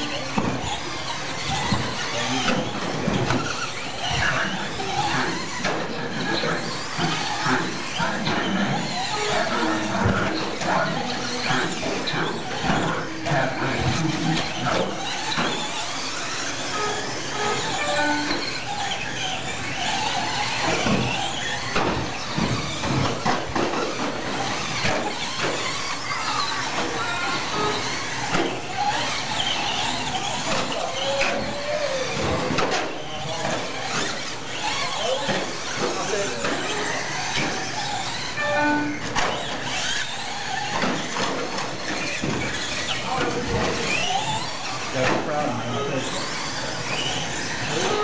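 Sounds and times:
rc truck motors whining: 0:00.0 - 0:48.0.

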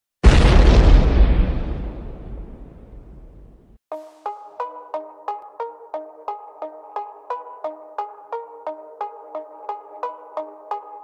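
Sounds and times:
deep boom with rumble: 0:00.2 - 0:03.8.

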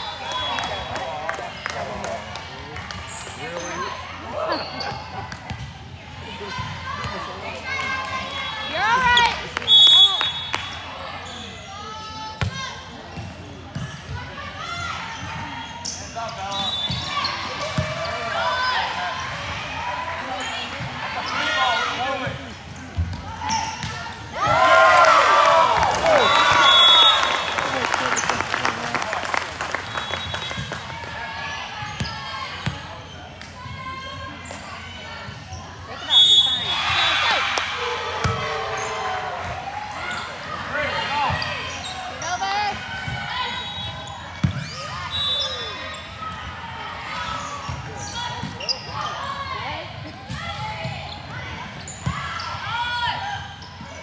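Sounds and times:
referee whistle blasts: 0:09.6 - 0:10.8, 0:26.2 - 0:27.5, 0:36.0 - 0:37.2
crowd cheering: 0:24.3 - 0:31.7, 0:36.4 - 0:41.3.

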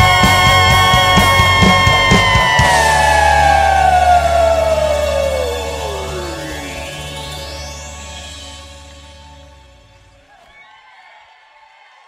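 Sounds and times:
low bass note: 0:00.0 - 0:10.0
rock band chord sliding down: 0:00.0 - 0:10.1.

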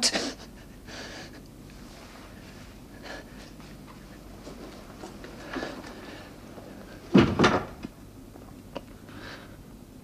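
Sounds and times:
wooden door shutting: 0:07.1 - 0:07.8.

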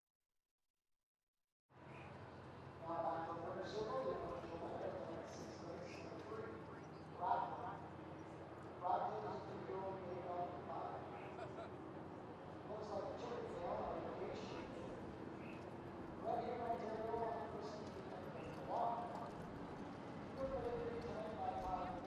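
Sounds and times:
horse hooves walking: 0:15.0 - 0:22.0.

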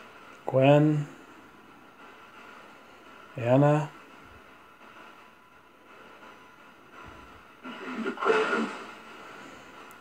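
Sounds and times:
radio static hiss: 0:00.0 - 0:10.0
garbled voice through speaker: 0:07.8 - 0:08.8.

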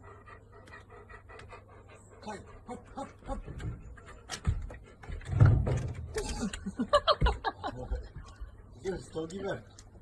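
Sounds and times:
dog panting: 0:00.0 - 0:05.3.

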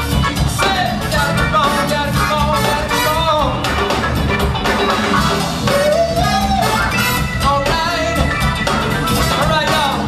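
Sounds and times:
live band music: 0:00.0 - 0:10.0
male lead vocal: 0:00.5 - 0:03.7, 0:05.6 - 0:08.4, 0:09.2 - 0:10.0.

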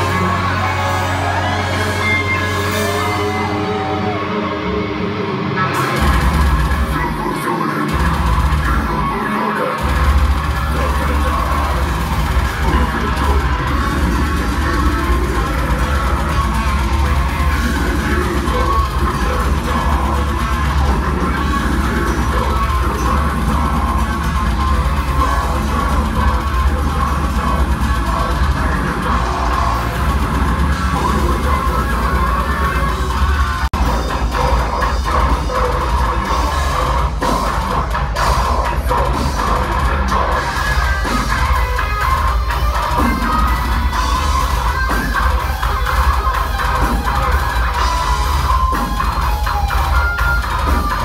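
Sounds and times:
distorted guitars: 0:00.0 - 0:51.0
screamed vocals: 0:00.0 - 0:51.0
pounding drums: 0:05.7 - 0:51.0.

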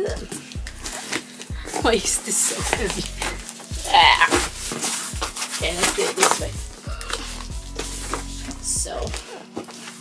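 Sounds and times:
background music with beat: 0:00.0 - 0:10.0
cardboard scraping cardboard: 0:00.8 - 0:10.0.

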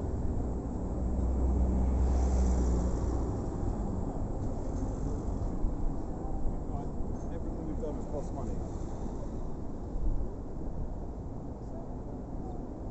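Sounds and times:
street traffic: 0:00.0 - 0:12.9.

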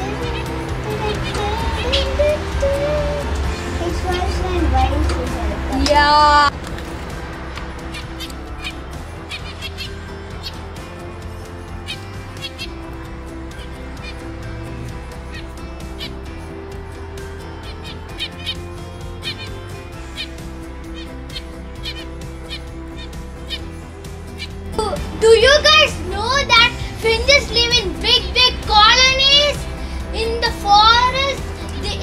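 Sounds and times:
finches peeping: 0:00.0 - 0:05.8, 0:07.4 - 0:32.0
background music: 0:00.0 - 0:32.0.

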